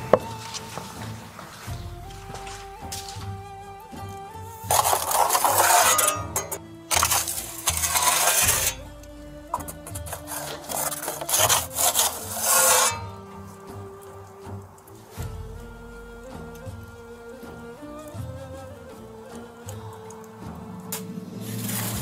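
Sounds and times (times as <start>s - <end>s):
metal peel scraping stone: 4.5s - 14.2s, 20.9s - 22.0s.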